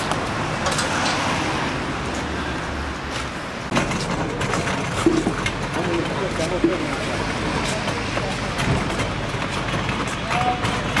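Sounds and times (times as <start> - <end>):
cart wheels rolling on paving: 0.0 - 11.0
street noise: 0.0 - 11.0
people's voices: 3.8 - 11.0.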